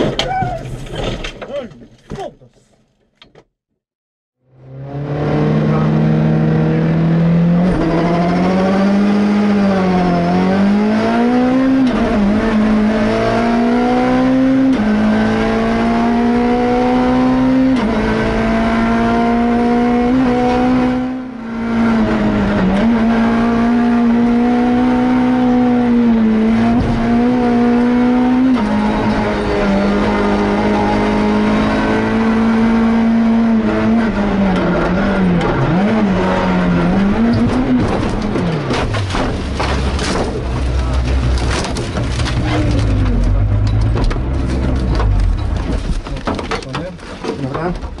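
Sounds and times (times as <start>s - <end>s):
rally car engine accelerating: 4.4s - 48.0s.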